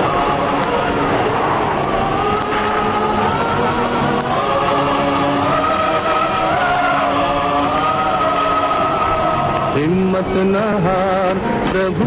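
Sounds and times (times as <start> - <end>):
chorus singing long notes: 0.0 - 12.0.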